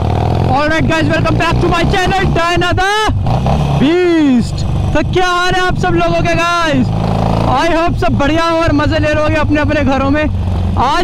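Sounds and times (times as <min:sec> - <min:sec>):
motorcycle engine rumbling: 0:00.0 - 0:11.0
person talking: 0:03.8 - 0:11.0.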